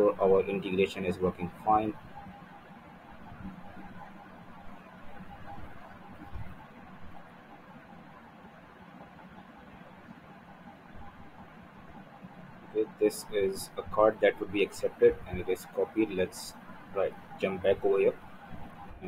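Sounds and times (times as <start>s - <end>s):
light hum: 0.0s - 19.0s
low background hiss: 0.0s - 19.0s.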